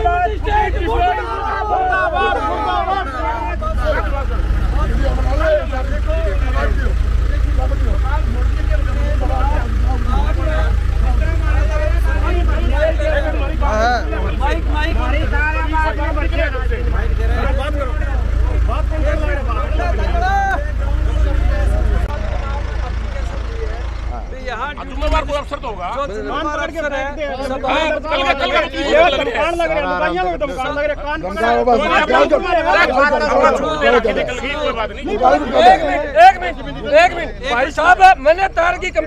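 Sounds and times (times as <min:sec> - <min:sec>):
steady low rumble: 0:00.0 - 0:27.0
men arguing: 0:00.0 - 0:39.0.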